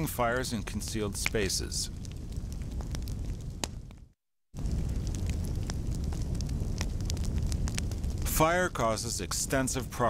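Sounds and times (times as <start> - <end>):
large fire rumbling and crackling: 0.0 - 10.0.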